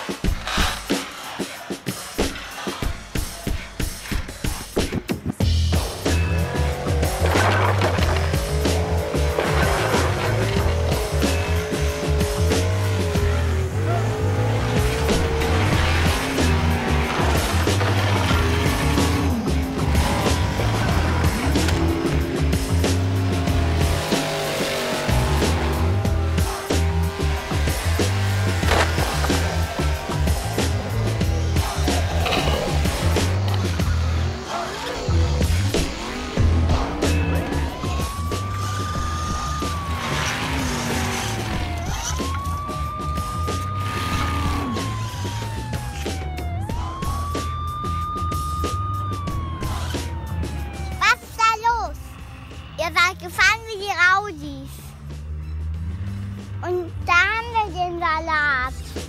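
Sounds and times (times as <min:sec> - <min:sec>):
music with heavy bass beat: 0:00.0 - 0:50.7.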